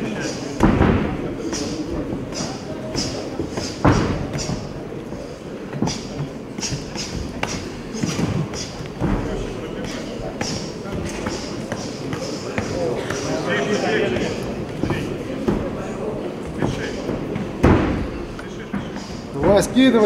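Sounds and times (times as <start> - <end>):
punches landing dull thuds: 0.6 - 4.8, 5.8 - 15.8, 16.5 - 18.2.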